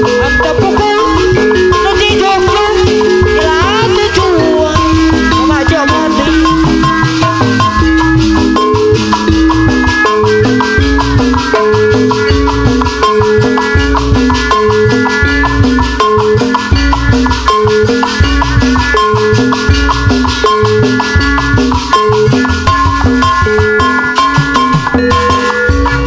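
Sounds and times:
crisp metal percussion: 0.0 - 26.0
gamelan metallophones melody: 0.0 - 26.0
kendang drums: 0.0 - 26.0.

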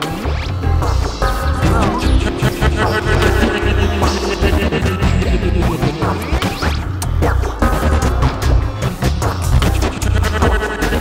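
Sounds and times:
downtempo electronic music: 1.5 - 7.5
sharp percussive hits: 1.6 - 7.0.

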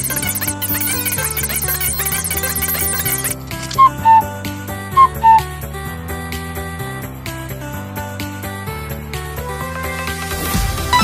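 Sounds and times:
background music: 0.0 - 11.0
two-note whistle: 3.8 - 4.3, 5.0 - 5.5.

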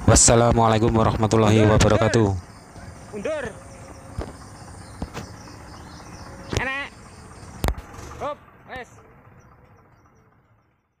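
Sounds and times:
faint outdoor background: 0.0 - 11.0.

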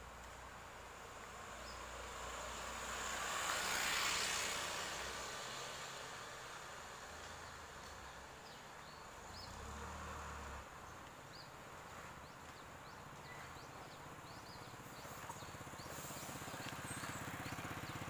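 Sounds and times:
vehicle passing close by: 1.2 - 8.0, 9.3 - 10.9, 14.8 - 18.0
engine noise: 9.2 - 11.0
faint bird chirps: 12.4 - 17.2.

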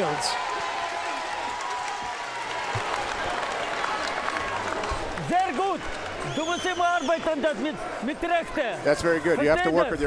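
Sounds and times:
crowd applause: 0.0 - 7.2.

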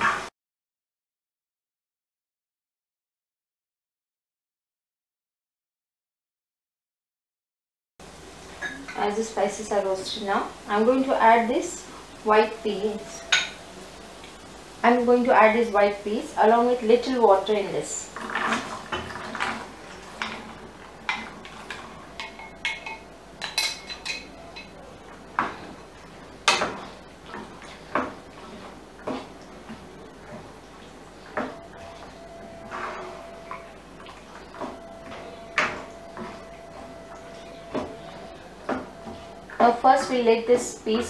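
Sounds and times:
wooden spatula scraping frying pan: 18.0 - 22.6.

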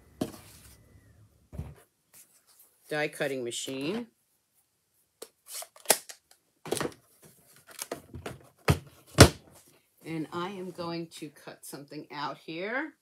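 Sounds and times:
plastic platforms knocking: 7.9 - 9.4.

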